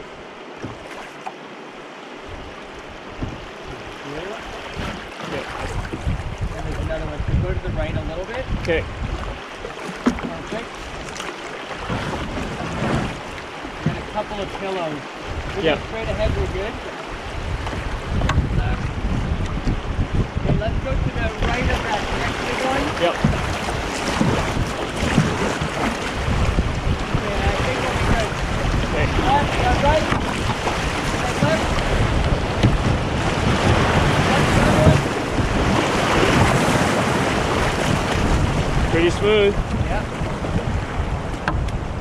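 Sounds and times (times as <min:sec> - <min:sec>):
wind buffeting microphone: 0:02.2 - 0:42.0
whitewater rapids rushing: 0:21.2 - 0:40.0.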